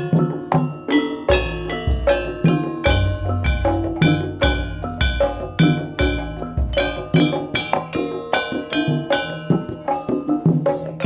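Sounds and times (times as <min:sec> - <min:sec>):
metallic percussion dance music: 0:00.0 - 0:11.0
deep drum beat: 0:01.3 - 0:07.8.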